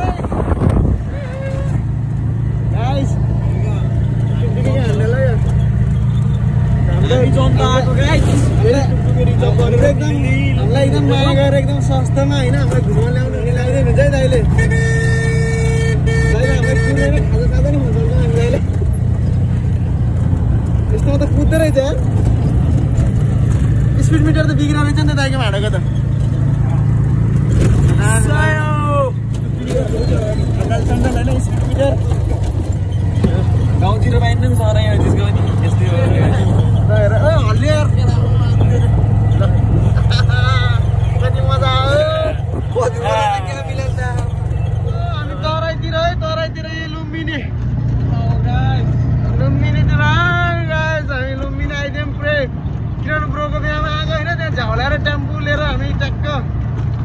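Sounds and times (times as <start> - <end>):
voices calling out: 0.0 - 54.8
vehicle engine and road noise: 0.0 - 57.0
people shouting and laughing: 38.7 - 41.1.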